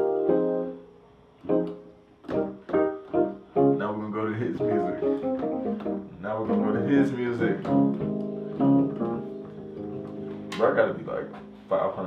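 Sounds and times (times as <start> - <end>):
digital piano chords: 0.0 - 12.0.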